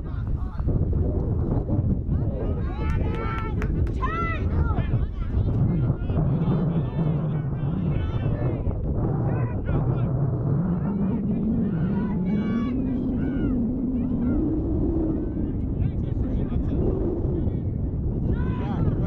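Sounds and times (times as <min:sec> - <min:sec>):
steady low rumble: 0:00.0 - 0:19.0
low drone rising in pitch: 0:06.2 - 0:18.2
distant people shouting: 0:11.7 - 0:14.4.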